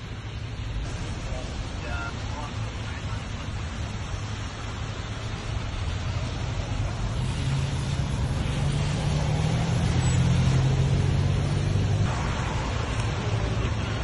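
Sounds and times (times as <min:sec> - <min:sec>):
car engine humming: 0:00.0 - 0:14.0
heavy rain on pavement: 0:00.0 - 0:14.0.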